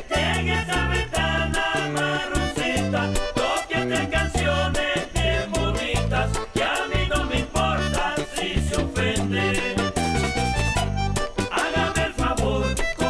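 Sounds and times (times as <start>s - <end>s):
accordion music with bass and percussion: 0.0s - 13.0s.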